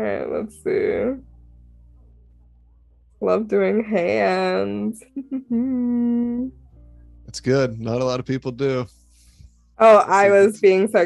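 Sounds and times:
person humming: 7.4 - 8.8.

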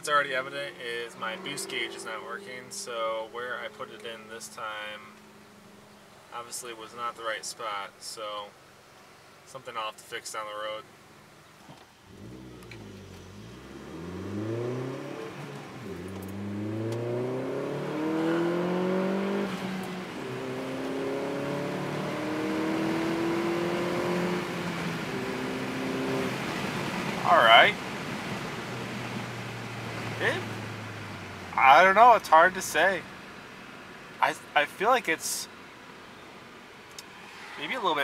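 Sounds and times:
car engine accelerating: 0.4 - 6.2, 12.0 - 32.9.

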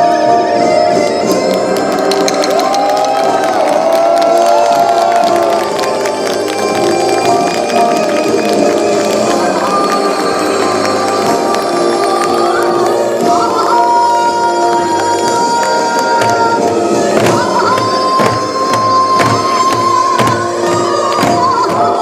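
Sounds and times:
traditional folk music: 0.0 - 22.0
crowd cheering and shouting: 0.3 - 22.0.

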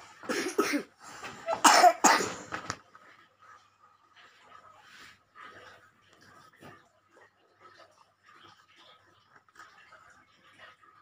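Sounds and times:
person coughing: 0.3 - 2.5.

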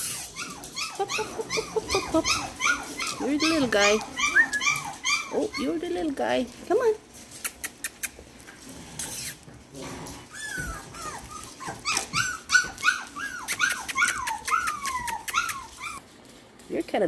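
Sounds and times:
puppy whimpering: 0.0 - 6.2, 10.2 - 16.0.

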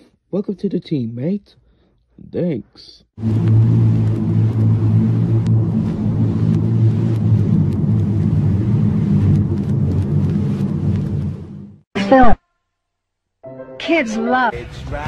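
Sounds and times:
engine-like low rumble: 3.2 - 11.8.

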